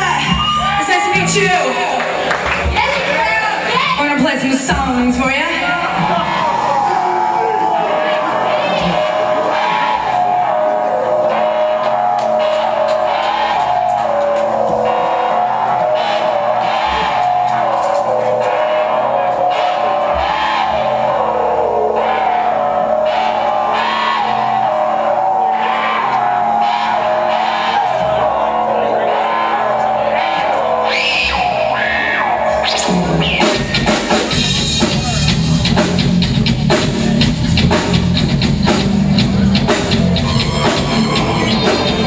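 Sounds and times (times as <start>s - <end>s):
rock band playing: 0.0s - 42.0s.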